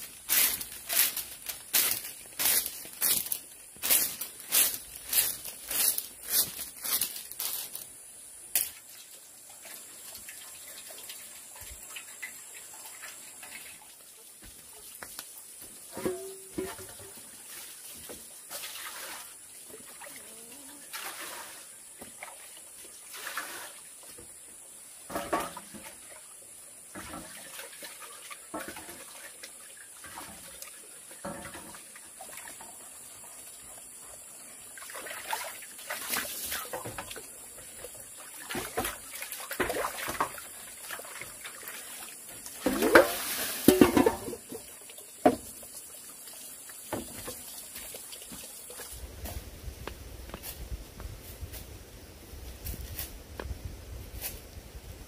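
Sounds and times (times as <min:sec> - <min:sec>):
bamboo strips clattering: 0:00.0 - 0:08.9, 0:42.6 - 0:44.6
water splashing into a metal basin: 0:08.6 - 0:14.9, 0:15.8 - 0:23.9, 0:25.0 - 0:26.2, 0:26.9 - 0:32.9, 0:34.7 - 0:49.0.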